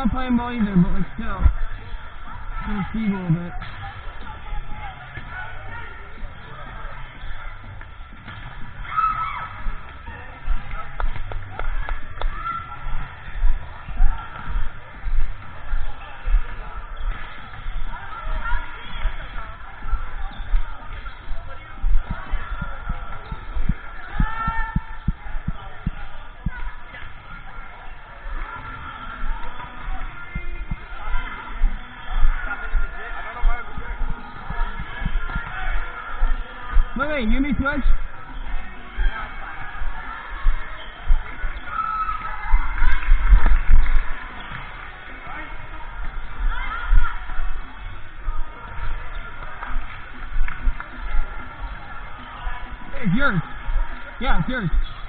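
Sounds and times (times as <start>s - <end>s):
players chattering and calling: 0.0s - 55.0s
voices: 0.0s - 55.0s
dull low thumps: 21.8s - 26.7s.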